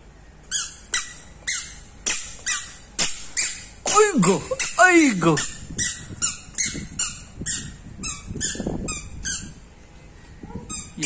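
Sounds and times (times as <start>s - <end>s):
squeaker shoes squeaking: 0.4s - 9.6s, 10.5s - 11.0s.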